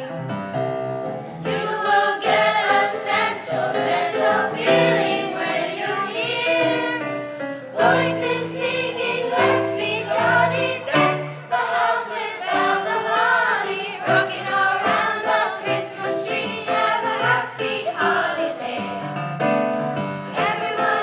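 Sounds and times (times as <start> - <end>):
children's choir singing: 1.4 - 21.0.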